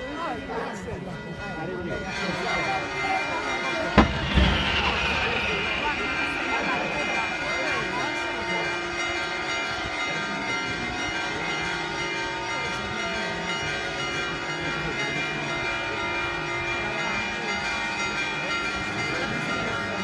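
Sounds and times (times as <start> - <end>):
church bells ringing: 1.1 - 20.0.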